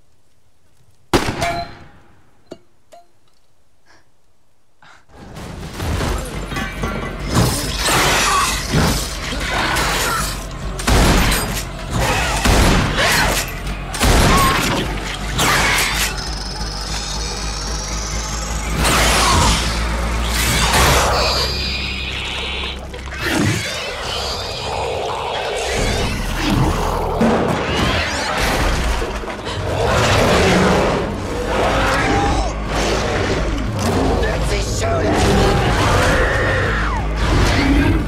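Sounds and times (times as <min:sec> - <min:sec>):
tense film score: 0:03.1 - 0:38.0.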